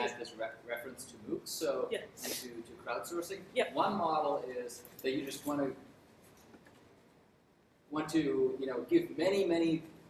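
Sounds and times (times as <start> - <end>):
man speaking: 0.0 - 5.8, 7.9 - 9.9.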